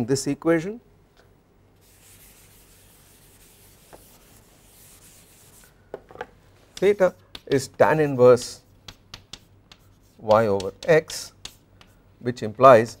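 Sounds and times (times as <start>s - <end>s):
rubbing on a chalkboard: 1.8s - 5.7s, 6.8s - 12.0s
man speaking: 6.8s - 8.6s, 10.2s - 11.4s.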